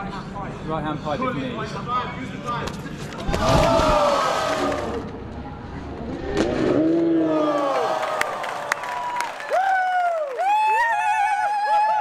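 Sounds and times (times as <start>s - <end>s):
men shouting and whooping: 6.9s - 8.4s, 9.5s - 12.0s.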